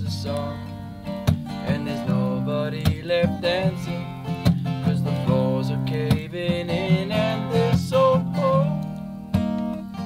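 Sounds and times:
man singing: 0.0s - 0.8s, 1.5s - 8.9s
acoustic guitar strumming: 0.0s - 10.0s.

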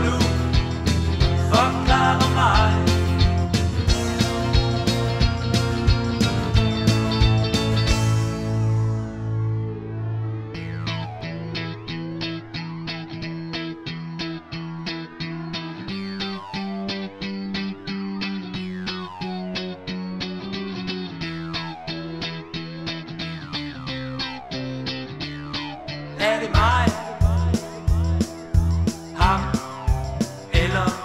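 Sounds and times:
low bass notes: 0.0s - 14.5s, 15.9s - 31.0s
electric guitar picking pattern: 0.0s - 31.0s.

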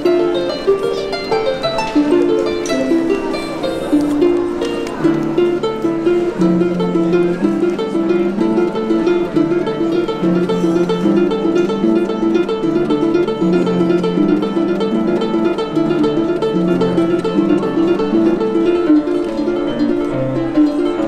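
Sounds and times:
harp playing: 0.0s - 21.0s.

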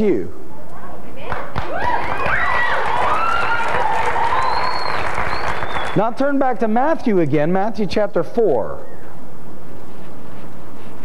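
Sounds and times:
congregation applauding: 1.6s - 6.5s.

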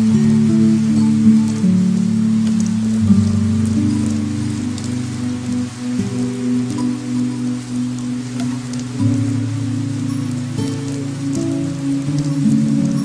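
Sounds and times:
heavy rain on pavement: 0.0s - 13.0s
soft music of low chords: 0.0s - 13.0s.

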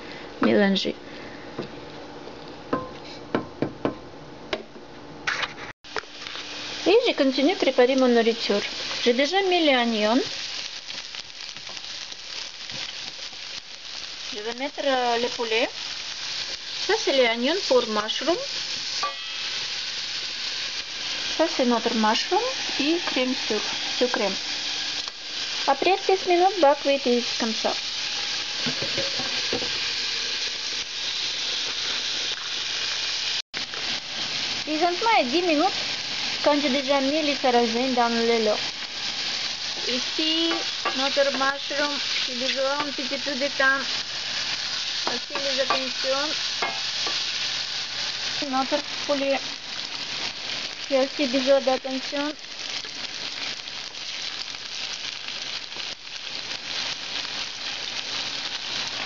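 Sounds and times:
woman speaking: 0.4s - 1.0s, 6.9s - 10.3s, 14.4s - 15.7s, 21.4s - 24.4s, 25.7s - 27.8s, 34.7s - 35.8s, 36.4s - 38.6s, 39.8s - 43.9s, 45.1s - 46.4s, 48.4s - 49.4s, 50.9s - 52.4s
onion sizzling in oil: 5.2s - 59.0s.

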